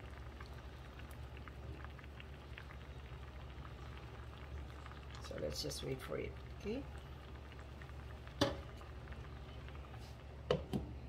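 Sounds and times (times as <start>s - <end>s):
food simmering in saucepan: 0.0s - 11.0s
low steady hum: 0.0s - 11.0s.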